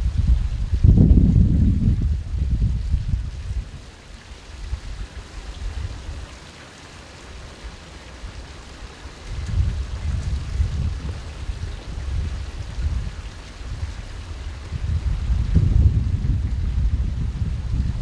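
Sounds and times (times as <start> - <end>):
wind rumbling on microphone: 0.0 - 6.4, 9.1 - 18.0
fountain water splashing: 0.0 - 18.0.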